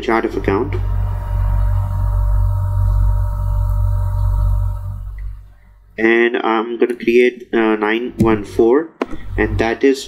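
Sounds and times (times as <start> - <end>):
faint steady tones: 0.0 - 6.0
low hum: 0.0 - 6.2.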